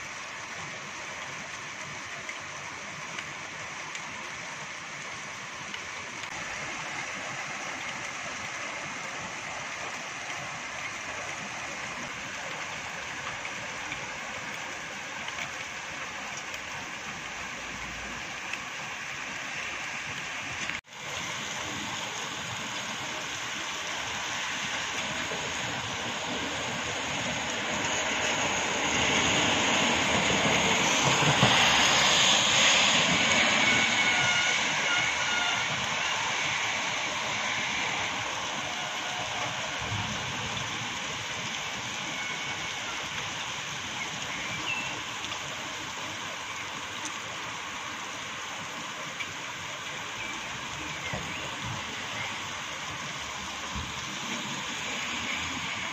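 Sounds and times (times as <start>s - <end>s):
rain hiss: 0.0s - 55.9s.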